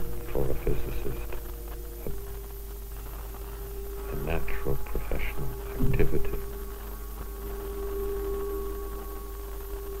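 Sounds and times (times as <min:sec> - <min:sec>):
low film soundtrack hum: 0:00.0 - 0:10.0
steady held tone: 0:00.0 - 0:10.0.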